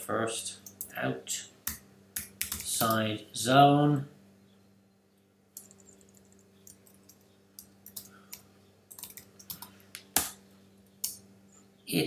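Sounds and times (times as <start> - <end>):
typing on keyboard: 2.2 - 2.9, 5.6 - 9.7.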